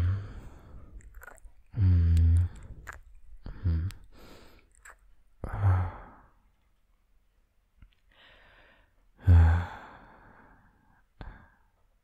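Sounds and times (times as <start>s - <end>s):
man kissing: 1.0s - 5.1s
soft lip smack: 3.8s - 5.1s.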